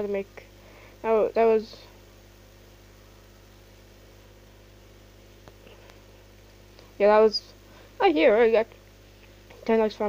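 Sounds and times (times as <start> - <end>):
faint hiss: 0.0 - 10.0
low electrical hum: 0.0 - 10.0.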